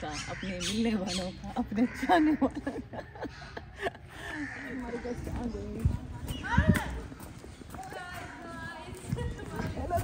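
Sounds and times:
sneaker footsteps on tile path: 0:04.2 - 0:10.0.

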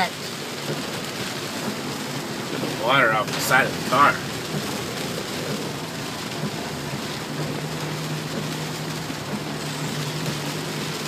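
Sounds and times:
heavy rain on car roof: 0:00.0 - 0:11.0.

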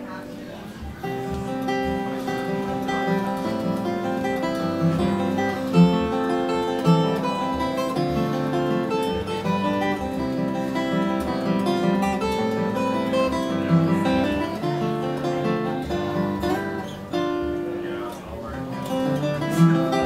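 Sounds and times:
fingerstyle acoustic guitar: 0:00.0 - 0:20.0.

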